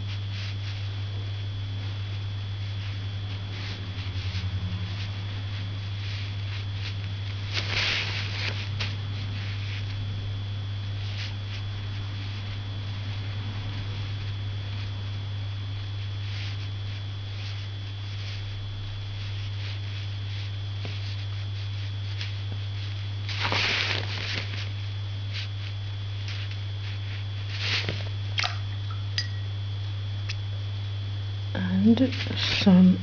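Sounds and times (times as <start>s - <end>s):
steady low hum: 0.0s - 33.0s
ink brush strokes on paper: 0.1s - 0.9s, 2.1s - 9.9s.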